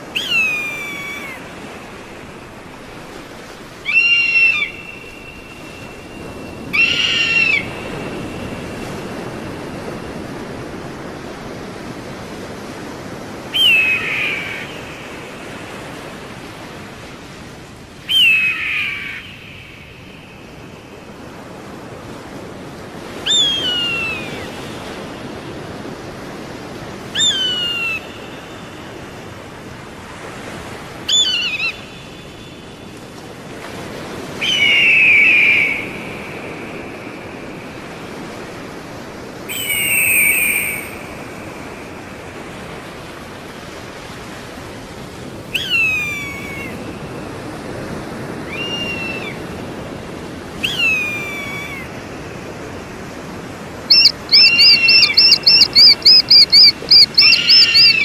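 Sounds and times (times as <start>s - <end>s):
eagle whistled screams: 0.2s - 1.4s, 3.8s - 8.3s, 13.6s - 14.7s, 18.1s - 19.4s, 23.2s - 24.5s, 27.2s - 28.2s, 31.1s - 31.8s, 34.4s - 36.4s, 39.5s - 41.1s, 45.5s - 46.8s, 48.5s - 49.4s, 50.6s - 51.9s, 53.9s - 58.0s
rapid eagle call notes: 3.8s - 5.9s, 6.7s - 7.9s, 53.9s - 58.0s.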